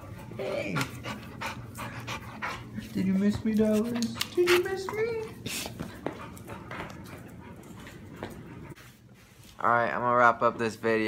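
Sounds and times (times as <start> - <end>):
dog panting: 0.0 - 9.0.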